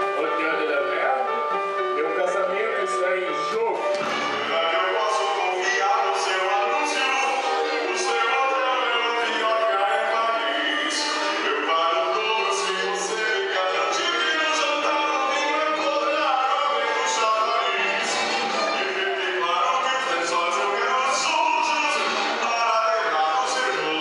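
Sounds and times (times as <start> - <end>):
singing over music: 2.0 - 24.0.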